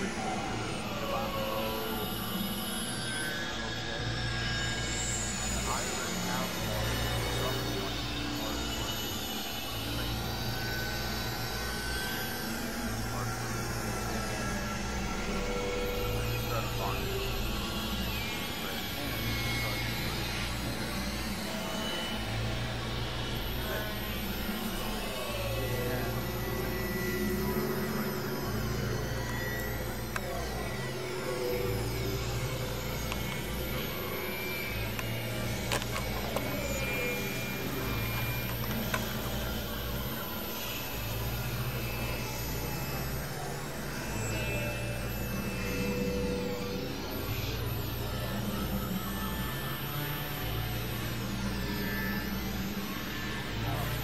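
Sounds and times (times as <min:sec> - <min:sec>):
low synthesizer drone: 0:00.0 - 0:54.0
noisy synth textures: 0:00.0 - 0:54.0
gliding synth tones: 0:09.7 - 0:54.0.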